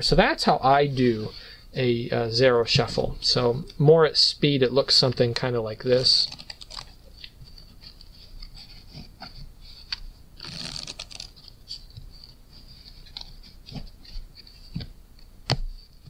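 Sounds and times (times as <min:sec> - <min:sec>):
playing cards clicking and sliding: 0:05.9 - 0:16.0
cards riffling: 0:06.0 - 0:09.0, 0:09.8 - 0:14.8.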